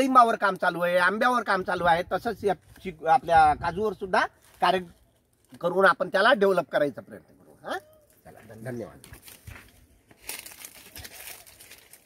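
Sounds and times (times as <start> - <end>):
leaves rustling against microphone: 1.6 - 6.2, 7.4 - 12.0.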